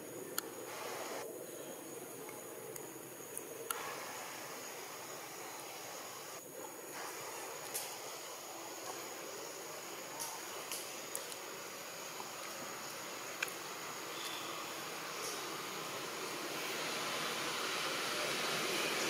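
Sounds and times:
soft hiss: 0:00.0 - 0:19.0
high-pitched insect drone: 0:03.8 - 0:19.0
faint clicks: 0:10.1 - 0:11.5.

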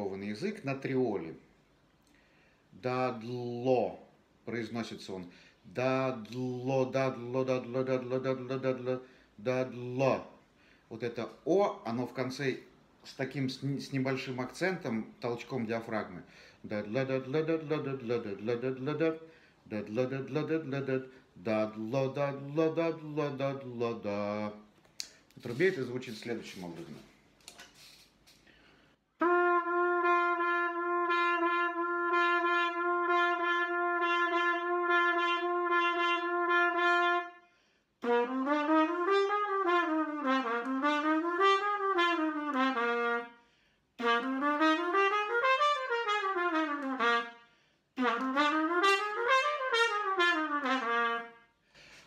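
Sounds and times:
trumpet playing tongued notes: 0:29.2 - 0:37.4, 0:38.0 - 0:43.4, 0:44.0 - 0:51.5.

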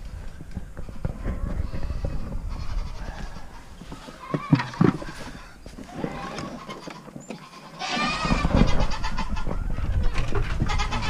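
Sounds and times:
faint rustling: 0:00.0 - 0:09.0
goats bleating: 0:00.9 - 0:09.5.

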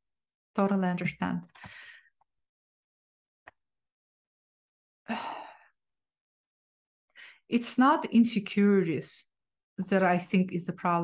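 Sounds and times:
woman sighing: 0:05.1 - 0:05.7.

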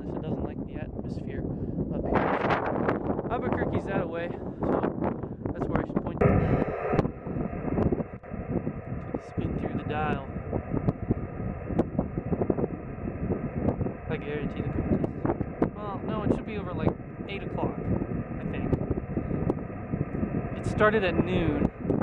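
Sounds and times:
radio receiver hiss: 0:06.2 - 0:08.3, 0:08.9 - 0:18.9
faint steady whistles: 0:06.2 - 0:22.0.

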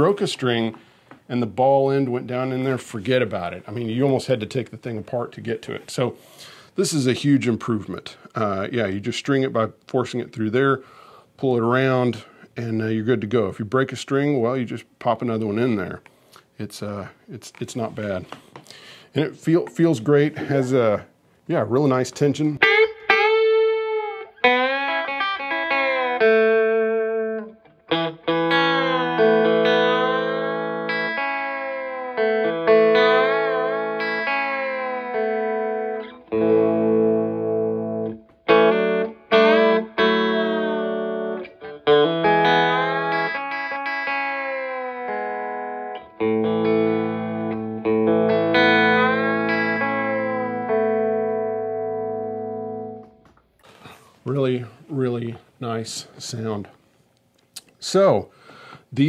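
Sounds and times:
electric guitar with bent notes: 0:22.6 - 0:54.0.

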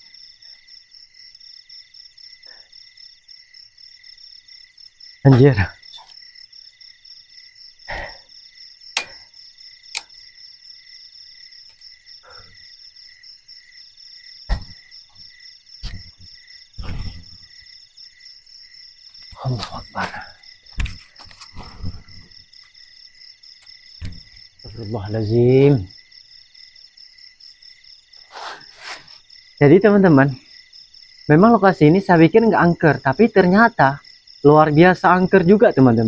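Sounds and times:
crickets chirping: 0:00.0 - 0:36.0
knocks and rustles: 0:14.5 - 0:17.4, 0:19.3 - 0:22.4, 0:24.0 - 0:24.5.

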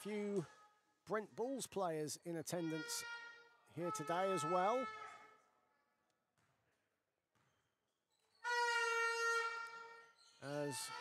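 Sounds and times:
loud steady horn tone: 0:08.4 - 0:10.1.

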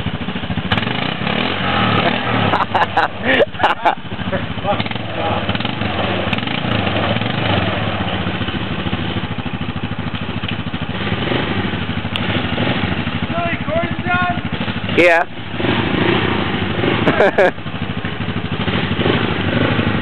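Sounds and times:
atv engine idling: 0:00.0 - 0:20.0.

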